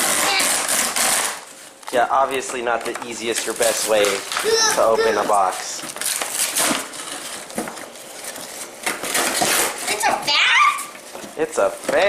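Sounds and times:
cardboard flaps scraping and rustling: 3.3 - 12.0.

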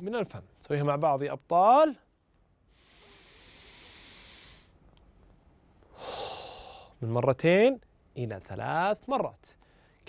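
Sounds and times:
man breathing in and out: 2.7 - 4.9, 5.8 - 7.0.

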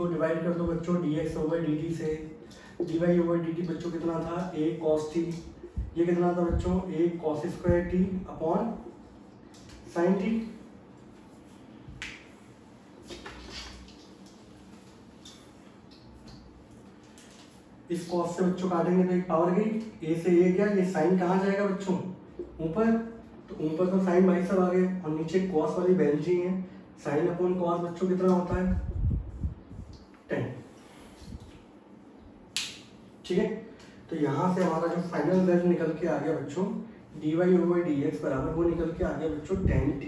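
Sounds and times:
low room noise: 0.0 - 40.0.

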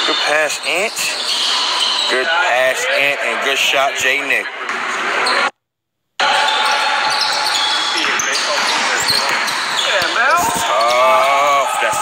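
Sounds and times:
players' voices: 0.0 - 5.5, 6.2 - 12.0.

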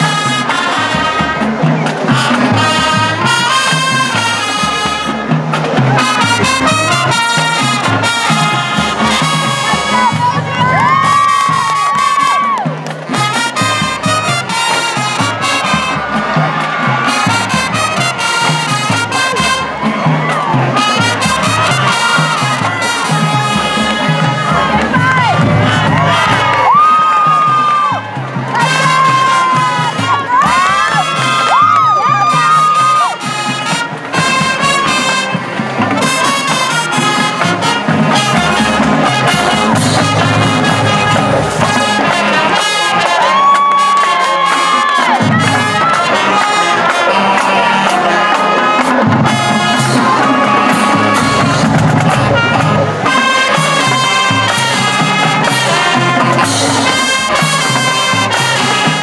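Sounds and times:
crowd cheering and shouting: 0.0 - 59.0
marching band playing: 0.0 - 59.0.

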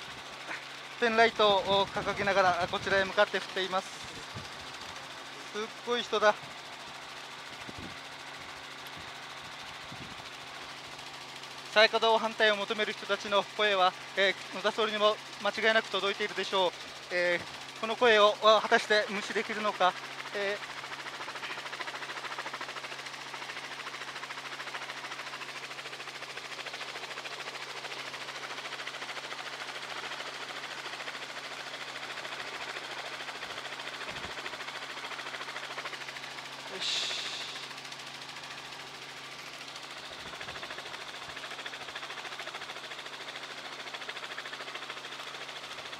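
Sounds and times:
helicopter engine and rotor drone: 0.0 - 45.9.

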